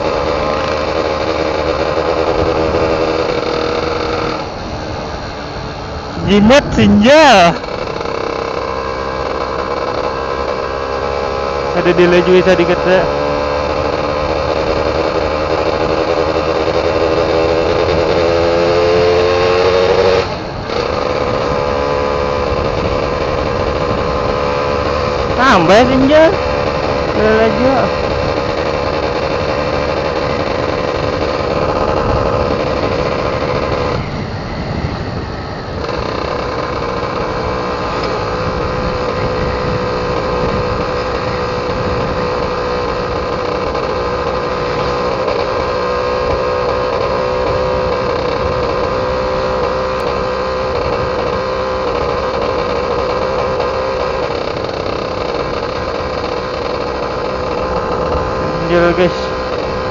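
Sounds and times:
two-stroke engine running: 0:00.0 - 0:59.9.

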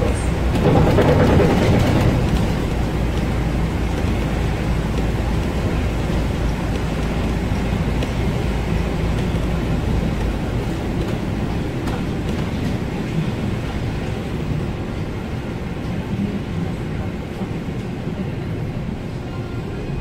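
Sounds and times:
tyre and road noise: 0:00.0 - 0:16.4
bus running rumble: 0:00.0 - 0:20.0.

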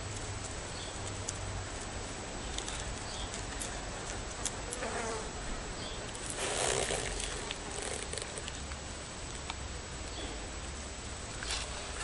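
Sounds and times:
insect wings buzzing: 0:06.2 - 0:08.5.

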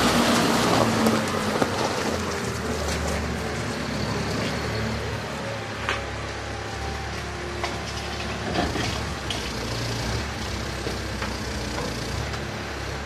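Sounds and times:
diesel engine running: 0:00.0 - 0:13.0.

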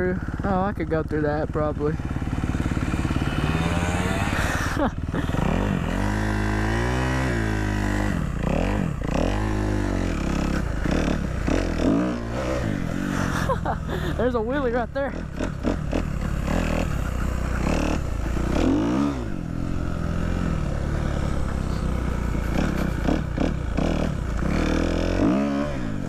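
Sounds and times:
dirt bike engine revving: 0:00.0 - 0:26.0.

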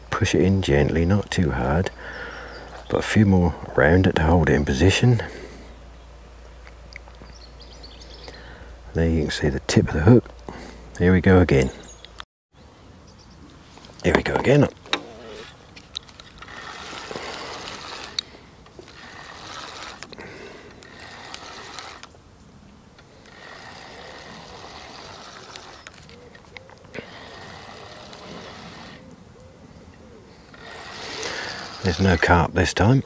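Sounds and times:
sharp reel clicks: 0:14.4 - 0:22.2, 0:22.9 - 0:29.1, 0:30.5 - 0:32.5
fishing reel winding: 0:15.0 - 0:22.1, 0:23.0 - 0:26.4, 0:27.0 - 0:29.1, 0:30.5 - 0:32.4.

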